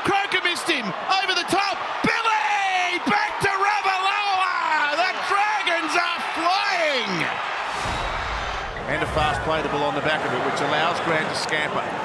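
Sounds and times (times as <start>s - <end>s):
commentator shouting excitedly: 0.0s - 7.3s
stadium crowd cheering: 0.0s - 12.0s
low rumble: 7.7s - 9.8s.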